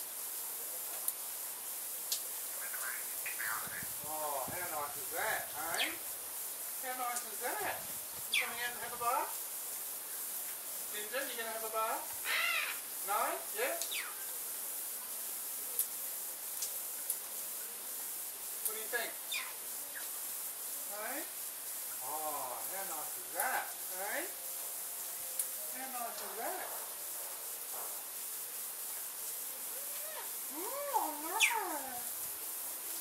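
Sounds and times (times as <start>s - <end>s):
misting nozzles hissing: 1.1s - 33.0s
parrots squawking and chattering: 2.7s - 3.9s, 5.6s - 6.0s, 8.3s - 8.7s, 12.2s - 12.9s, 13.9s - 14.2s, 19.3s - 20.1s, 29.7s - 32.1s.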